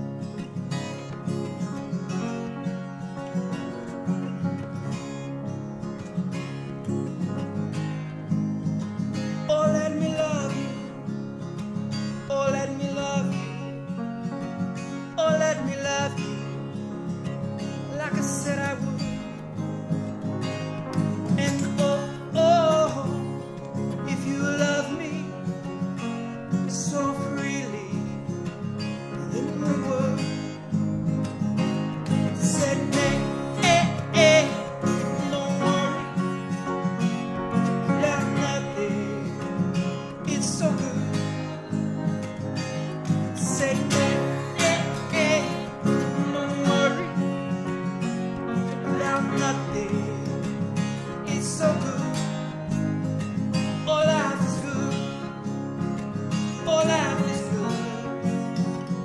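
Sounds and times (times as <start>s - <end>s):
country acoustic guitar: 0.0s - 59.0s.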